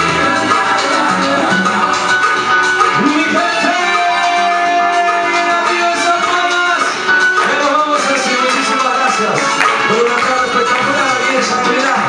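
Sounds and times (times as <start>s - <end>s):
live salsa band with guitar: 0.0s - 12.0s.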